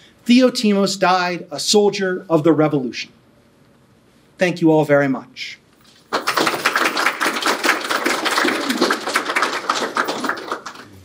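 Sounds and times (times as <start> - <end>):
audience applauding: 5.9 - 11.0.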